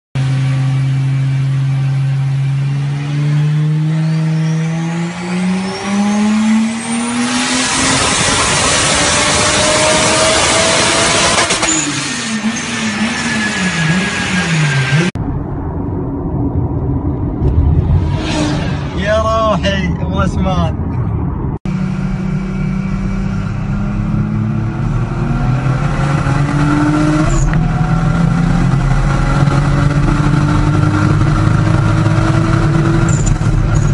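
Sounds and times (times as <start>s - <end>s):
engine revving at full throttle: 0.2s - 15.2s, 21.7s - 33.9s
car driving on road: 0.2s - 33.9s.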